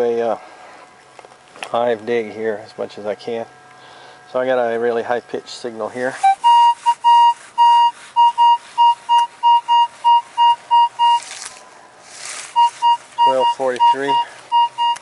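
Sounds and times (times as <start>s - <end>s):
metal detector beeps: 6.2s - 11.4s, 12.5s - 15.0s.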